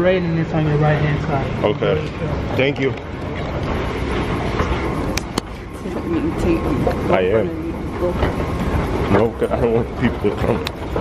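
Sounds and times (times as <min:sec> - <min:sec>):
escalator rumbling: 0:00.0 - 0:11.0.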